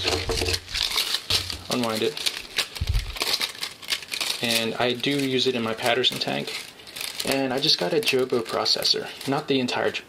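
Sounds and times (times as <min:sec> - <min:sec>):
plastic film apron crinkling: 0:00.0 - 0:10.0.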